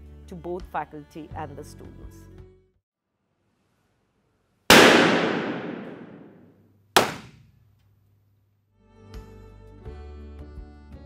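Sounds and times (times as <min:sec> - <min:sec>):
balloon pop echoing: 0:04.7 - 0:06.4, 0:07.0 - 0:07.4.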